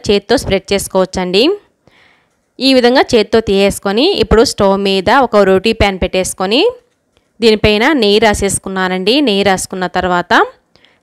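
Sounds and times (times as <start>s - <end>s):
woman talking: 0.0s - 1.7s, 2.6s - 6.8s, 7.4s - 10.6s.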